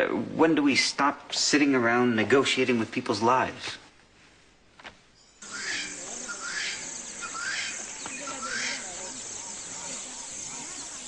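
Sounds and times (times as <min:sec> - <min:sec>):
insects humming: 0:05.2 - 0:11.0
bird swooping chirps: 0:05.4 - 0:11.0.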